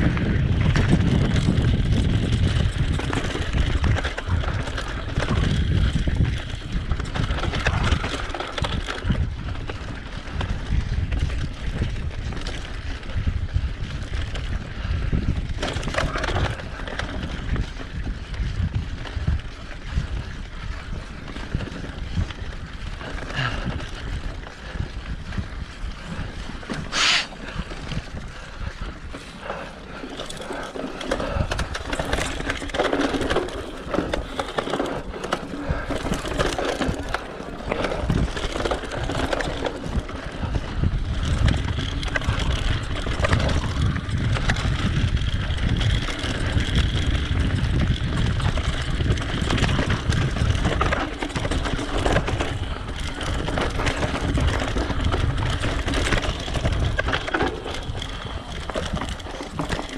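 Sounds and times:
bike rattling over bumps: 0.0 - 59.9
wind on microphone: 0.0 - 59.9.

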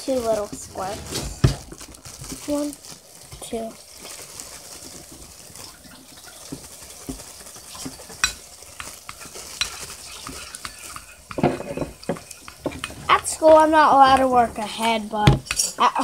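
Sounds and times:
spoon stirring wet slime: 3.2 - 16.0.

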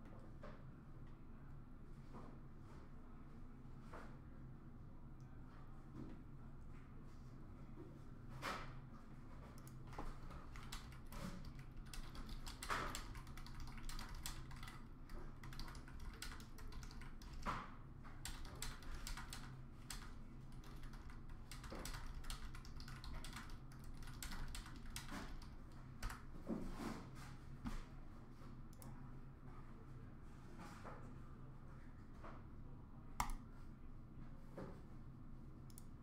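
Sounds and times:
low steady hum: 9.5 - 26.6
keyboard typing clicks: 9.6 - 17.6, 18.2 - 26.3, 33.2 - 33.4.

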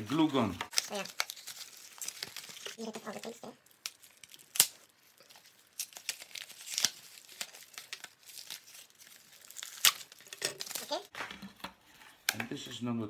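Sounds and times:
cardboard and paper rustling: 0.0 - 3.6, 5.2 - 12.3.

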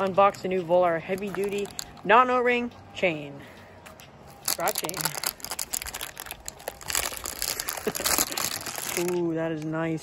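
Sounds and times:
plastic bag crinkling: 1.0 - 2.0, 4.4 - 9.3.

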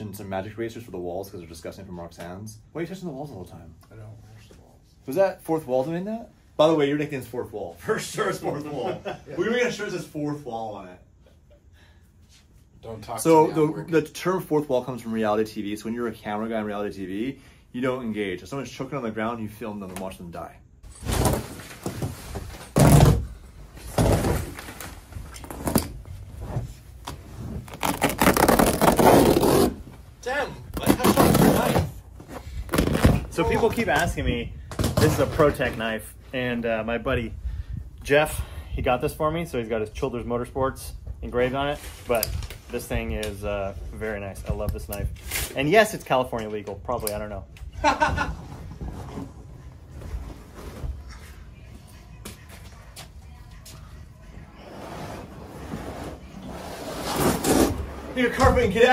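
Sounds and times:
carpet tearing: 27.6 - 29.8, 30.8 - 31.9, 32.7 - 33.3
faint background music: 48.9 - 58.9.

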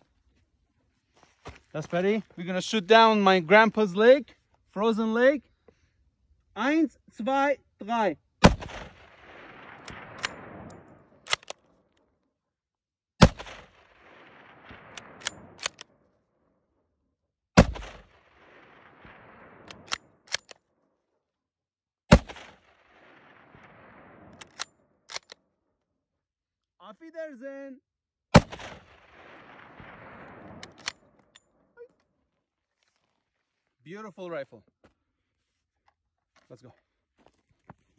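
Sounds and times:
rifle shots with echo: 8.4 - 11.7, 13.2 - 16.0, 17.6 - 20.5, 22.1 - 25.2, 28.3 - 31.4
rifle bolt clicks: 11.3 - 11.6, 15.0 - 15.9, 24.4 - 25.4.

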